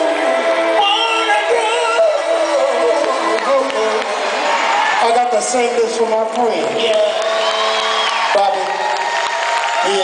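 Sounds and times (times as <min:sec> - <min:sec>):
person singing with sliding notes: 0:00.0 - 0:04.3
live soul band playing: 0:00.0 - 0:08.6.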